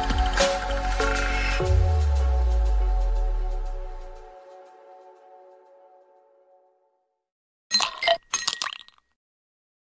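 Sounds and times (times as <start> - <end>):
glassy clinking bursts: 7.7 - 9.0.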